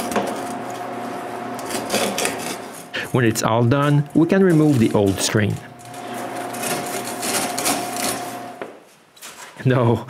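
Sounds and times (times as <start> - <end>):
screen mesh rustling and scraping: 4.2 - 9.6.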